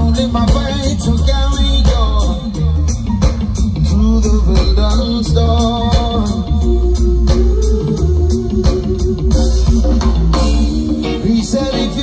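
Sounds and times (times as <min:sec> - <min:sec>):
guitar: 0:00.0 - 0:12.0
heavy bass line: 0:00.0 - 0:12.0
reggae band playing: 0:00.0 - 0:12.0
steady drum beat: 0:00.0 - 0:12.0.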